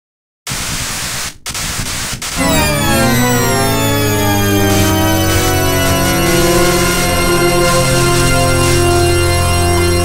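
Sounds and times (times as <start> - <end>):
static-like noise burst: 0.5 - 9.4
gliding synthesizer tones: 2.4 - 10.0
steady bass: 2.4 - 10.0.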